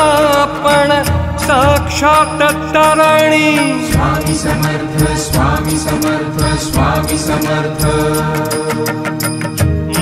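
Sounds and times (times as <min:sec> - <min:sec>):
steady percussion beat: 0:00.0 - 0:10.0
sustained held notes: 0:02.4 - 0:08.9.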